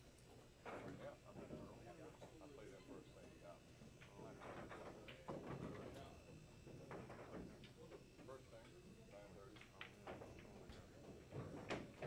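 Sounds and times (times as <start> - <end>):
faint voices talking: 0.6 - 12.0.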